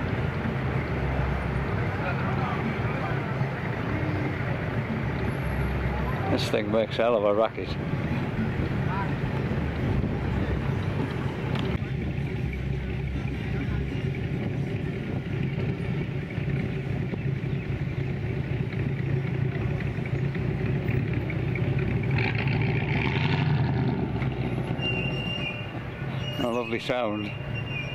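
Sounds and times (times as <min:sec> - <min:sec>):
car engine rumbling past: 0:00.0 - 0:27.9.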